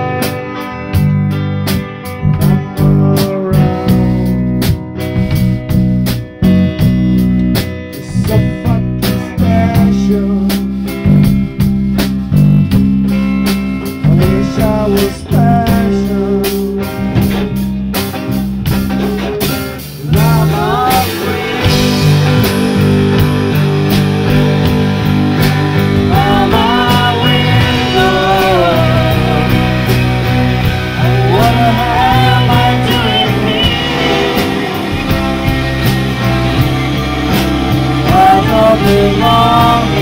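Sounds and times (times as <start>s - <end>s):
drum kit: 0.0s - 40.0s
electric guitars: 0.0s - 40.0s
people singing: 20.0s - 22.8s, 25.8s - 36.2s, 36.8s - 40.0s.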